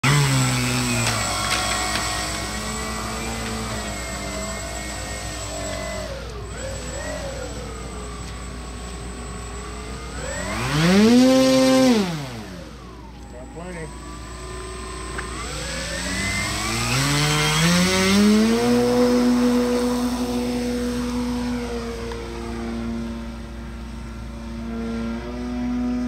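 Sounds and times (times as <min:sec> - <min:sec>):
model airplane engine running: 0:00.0 - 0:26.0.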